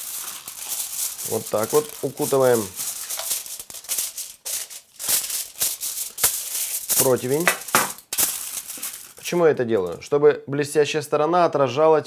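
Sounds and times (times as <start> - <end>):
aluminium foil crinkling: 0.0 - 10.1.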